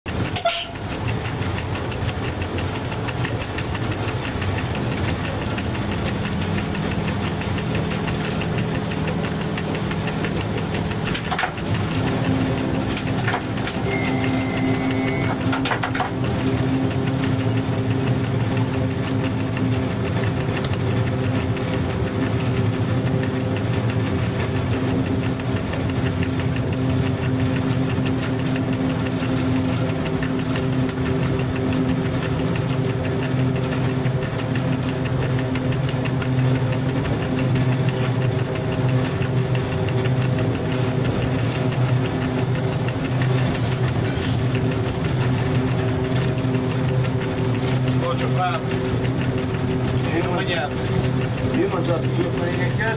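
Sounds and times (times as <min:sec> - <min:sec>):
train wheels rattling on track: 0:00.1 - 0:52.9
electric motor hum: 0:00.9 - 0:52.9.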